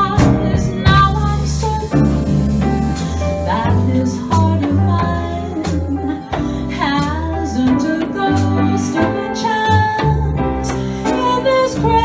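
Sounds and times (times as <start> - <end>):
woman singing: 0.0 - 10.4, 11.1 - 12.0
upright bass: 0.0 - 10.9
drums: 0.0 - 12.0.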